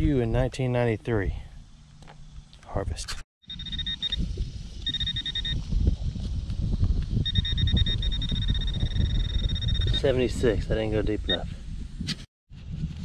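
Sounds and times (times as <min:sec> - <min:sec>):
metal detector beeping: 0:03.4 - 0:05.7, 0:07.2 - 0:10.3, 0:11.3 - 0:11.5
rustling and scraping dirt: 0:04.0 - 0:07.3, 0:11.8 - 0:13.0.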